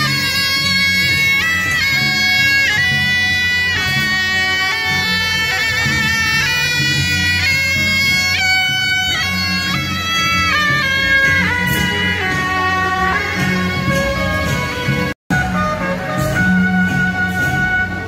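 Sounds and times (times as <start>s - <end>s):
double-reed horns playing melody: 0.0s - 18.0s.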